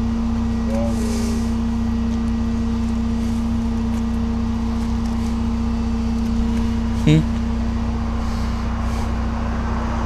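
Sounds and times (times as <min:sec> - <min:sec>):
tow truck engine idling: 0:00.0 - 0:10.0.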